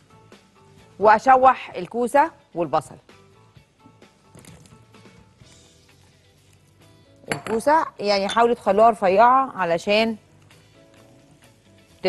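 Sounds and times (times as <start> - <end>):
quiet background music: 0.0 - 12.0
glass and utensils clinking on pan: 7.3 - 9.0.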